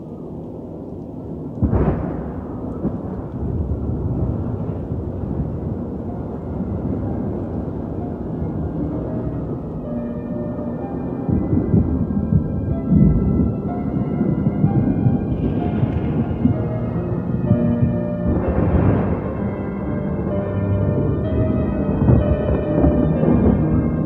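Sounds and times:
rolling thunder: 0:00.0 - 0:24.0
thunderclap: 0:00.0 - 0:24.0
sustained keyboard chord: 0:06.0 - 0:24.0.

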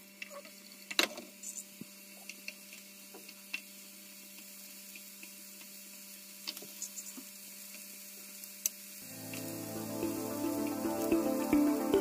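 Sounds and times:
background music: 0:09.0 - 0:12.0
low hum: 0:09.0 - 0:12.0.

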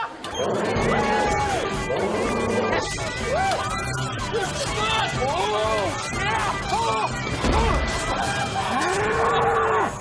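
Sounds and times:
mechanical bull mooing: 0:00.3 - 0:03.0.

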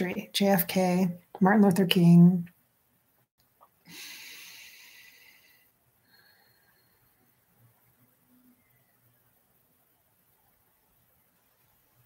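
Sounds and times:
person breathing out: 0:03.9 - 0:07.1.

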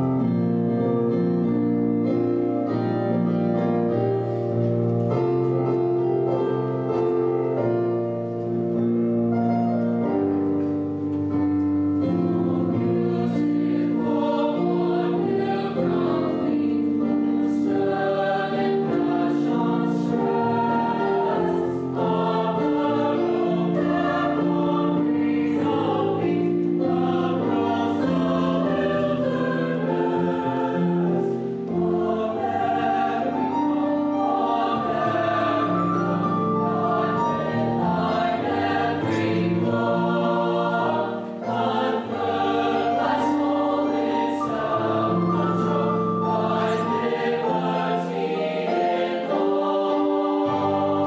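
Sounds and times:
mixed choir singing: 0:10.8 - 0:51.0.

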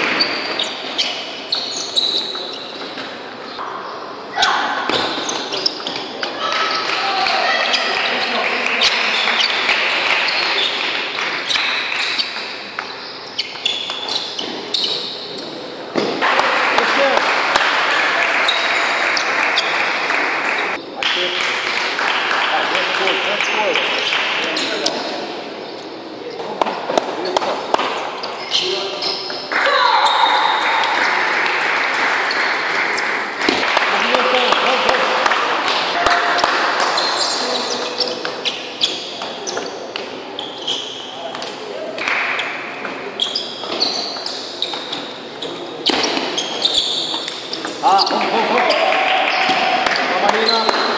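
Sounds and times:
crowd voices: 0:00.0 - 0:50.9.

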